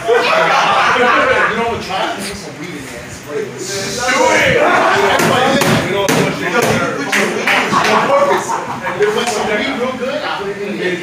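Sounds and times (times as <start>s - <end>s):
indistinct voices in a hall: 0.0s - 11.0s
sharp knocks: 5.1s - 6.9s.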